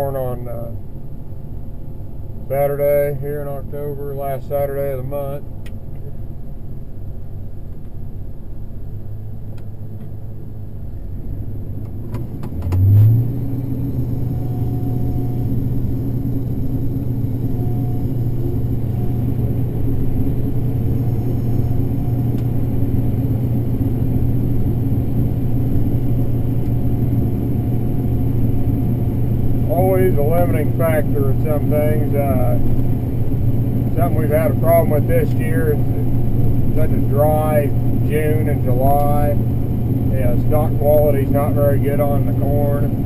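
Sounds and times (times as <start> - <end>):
combine harvester engine drone: 0.0 - 43.0
faint high whine: 13.0 - 43.0.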